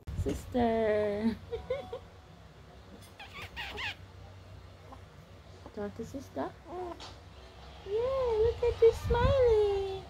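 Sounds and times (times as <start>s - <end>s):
infant squealing coos: 3.2s - 4.0s.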